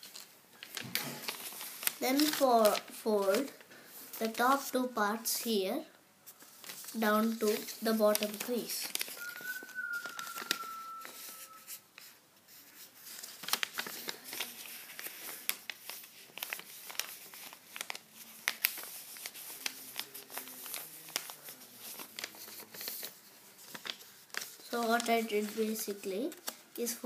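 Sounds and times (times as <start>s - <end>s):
paper being folded and creased: 0.0s - 5.5s, 6.2s - 27.0s.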